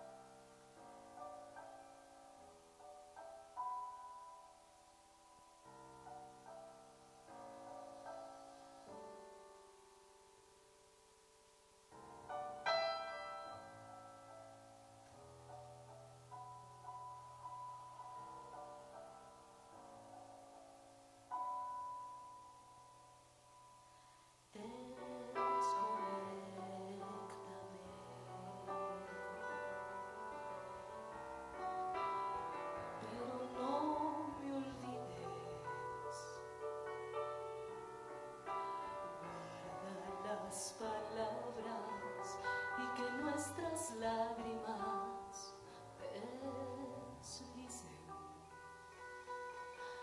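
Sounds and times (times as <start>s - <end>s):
woman singing slow song: 24.5s - 31.0s, 32.5s - 36.6s, 38.8s - 50.0s.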